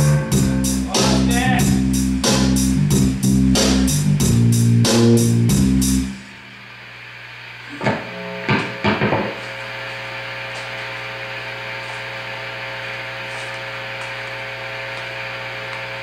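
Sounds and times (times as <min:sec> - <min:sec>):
amplifier mains hum and hiss: 0:00.0 - 0:16.0
sharp thumps: 0:07.7 - 0:09.4.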